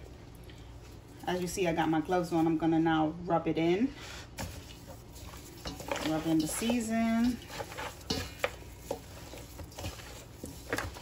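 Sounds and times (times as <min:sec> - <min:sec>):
hands rubbing meat in bowl: 0:04.4 - 0:11.0.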